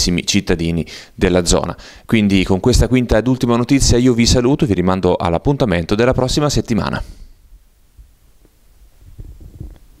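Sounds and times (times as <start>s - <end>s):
microphone handling thumps: 9.0s - 10.0s.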